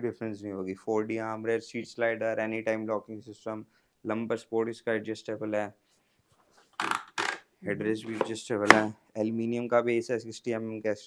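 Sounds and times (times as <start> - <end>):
office chair fitting clicking: 6.8 - 7.4.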